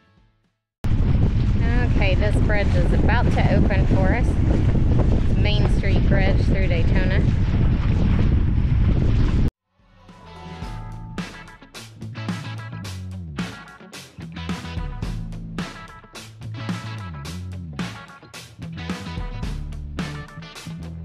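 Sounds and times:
music: 0.0 - 0.6, 9.6 - 21.0
wind buffeting microphone: 0.8 - 9.5.

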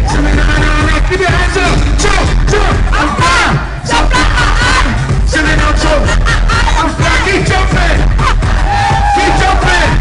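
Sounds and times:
loud live music with heavy bass: 0.0 - 10.0
voices shouting and singing: 0.0 - 10.0.

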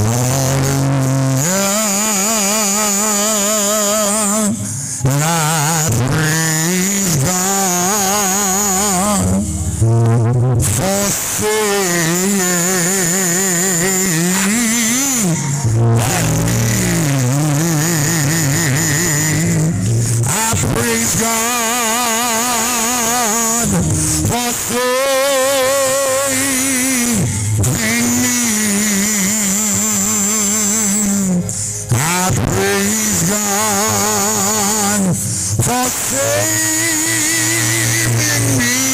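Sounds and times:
man singing into a microphone: 0.0 - 38.9.

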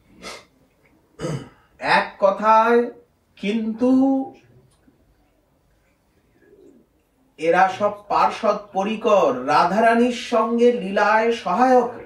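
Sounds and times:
faint low coo: 6.2 - 7.0.

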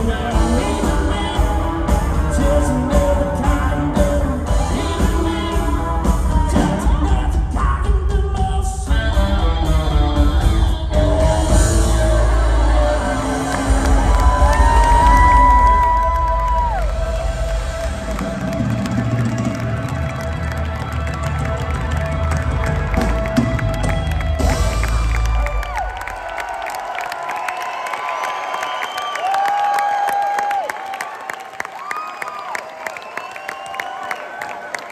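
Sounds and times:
live rock band playing: 0.0 - 26.1
crowd cheering and shouting: 11.0 - 34.9.

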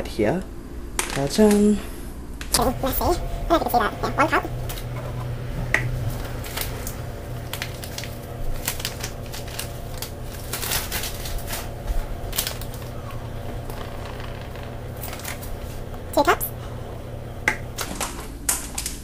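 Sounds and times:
steady low hum: 2.5 - 18.3.

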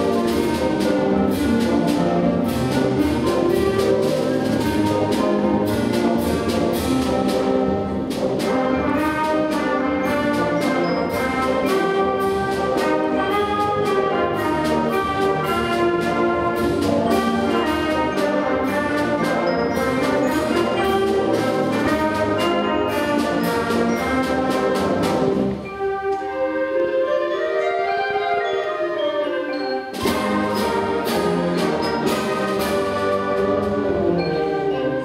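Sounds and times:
band playing a march: 0.0 - 35.0
percussion strokes: 0.0 - 35.0.

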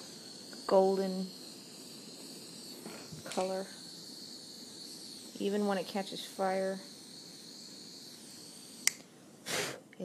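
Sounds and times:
cooking torch hissing: 0.0 - 10.0
sharp click: 8.8 - 9.1.

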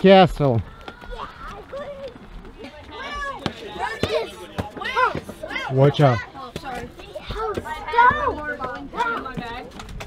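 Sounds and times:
children making wordless calls: 0.6 - 9.8.

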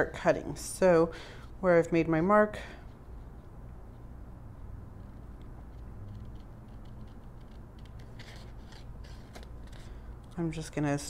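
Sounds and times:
scissors snipping paper: 5.0 - 10.6.

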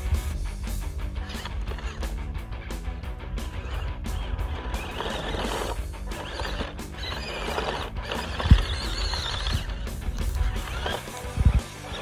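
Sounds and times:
background music: 0.0 - 12.0
high wavering squeals: 3.4 - 12.0.

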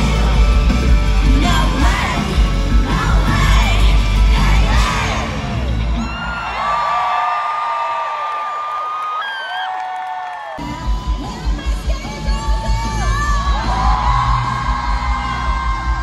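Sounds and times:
live pop-punk band: 0.0 - 6.2
crowd whooping and cheering: 1.3 - 16.0.

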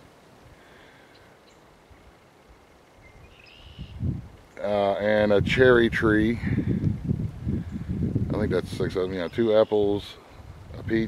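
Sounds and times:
faint distant bird chirps: 0.0 - 5.2, 8.9 - 10.8.

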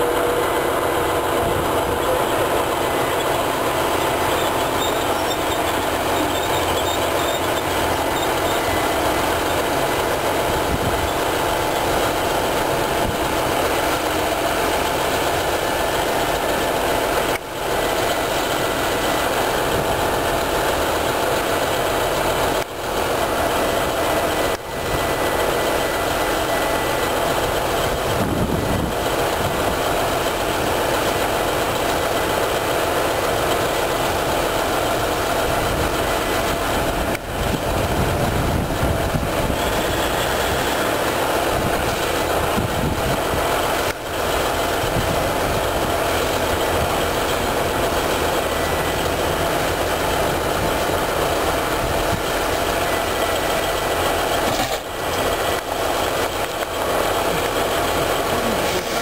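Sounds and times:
diesel railcars idling: 0.0 - 59.0.

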